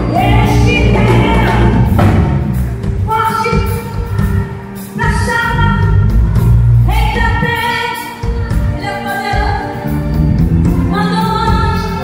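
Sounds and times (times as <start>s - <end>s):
woman singing gospel song: 0.0s - 2.1s, 6.9s - 9.9s
band with heavy bass line: 0.0s - 12.0s.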